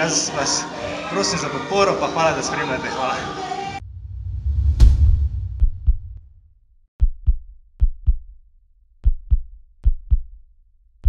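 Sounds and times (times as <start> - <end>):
heartbeat thumps: 3.8 - 6.3, 7.0 - 8.3, 9.0 - 10.3
low rumble: 3.8 - 6.5.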